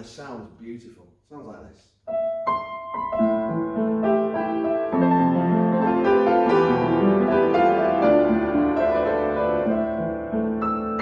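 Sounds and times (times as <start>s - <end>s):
upright piano playing: 2.1s - 11.0s.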